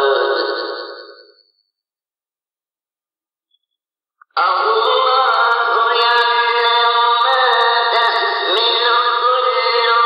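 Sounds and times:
chanted singing: 4.4s - 10.0s.

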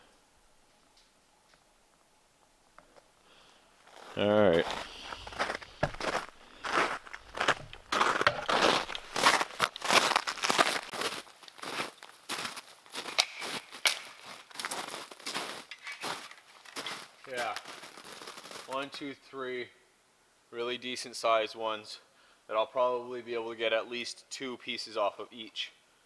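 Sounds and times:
branches brushing and rustling: 3.8s - 18.9s
footsteps crunching through snow: 3.8s - 18.9s.

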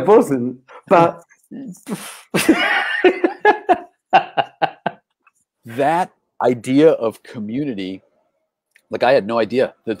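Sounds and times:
man laughing heartily: 2.4s - 5.0s.

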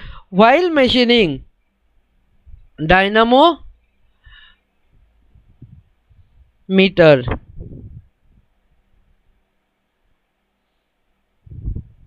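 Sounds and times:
faint hiss: 3.7s - 11.8s.

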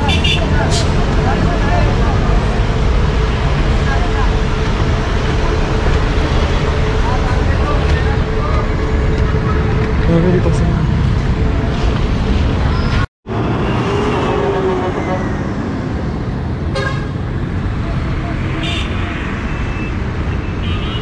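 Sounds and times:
road traffic: 0.0s - 21.0s.

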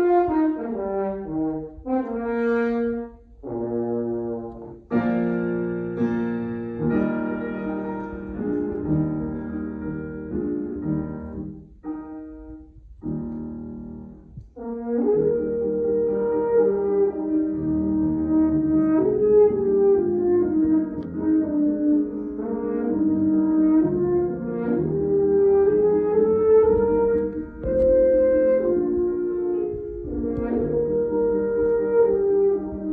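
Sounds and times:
french horn melody: 0.0s - 32.9s
piano chords: 0.0s - 32.9s.

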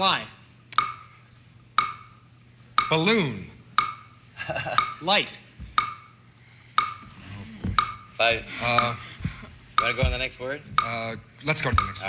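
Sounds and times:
timer ticking: 0.7s - 6.2s, 6.8s - 7.2s, 7.8s - 12.0s.

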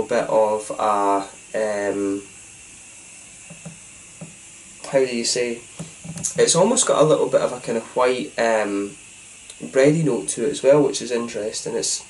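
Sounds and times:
man speaking: 0.0s - 2.3s, 4.8s - 5.6s, 6.2s - 9.0s, 9.6s - 12.0s
faint hiss: 0.0s - 12.0s.

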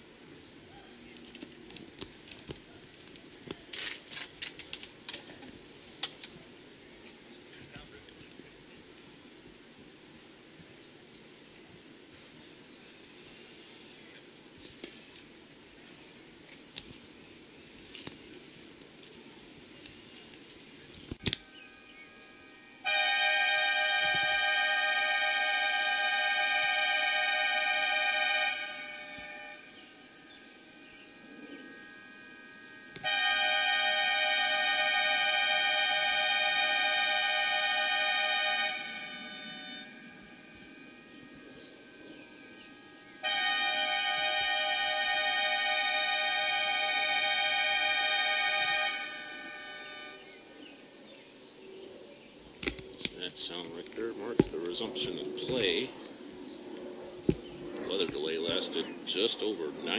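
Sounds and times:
warning horn blasts: 21.2s - 50.9s.

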